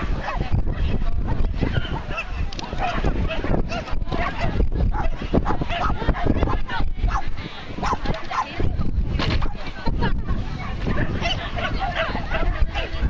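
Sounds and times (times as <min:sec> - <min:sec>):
voices calling out: 0:00.0 - 0:13.0
dog barking: 0:00.2 - 0:00.4, 0:01.7 - 0:08.5, 0:10.9 - 0:13.0.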